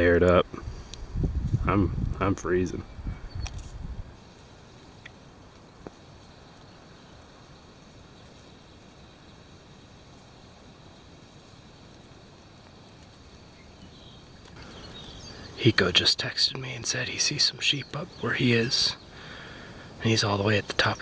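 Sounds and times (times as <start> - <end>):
low rumble on microphone: 0.0 - 4.2
faint hiss: 0.0 - 21.0
small clicks: 3.4 - 3.8.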